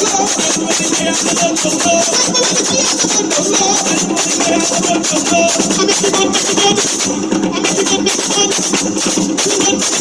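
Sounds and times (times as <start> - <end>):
hand drumming: 0.0 - 10.0
shaker rattling: 0.0 - 10.0.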